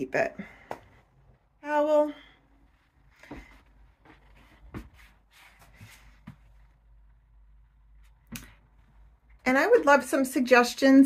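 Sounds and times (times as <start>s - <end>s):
faint taps and rustles: 3.2s - 6.9s.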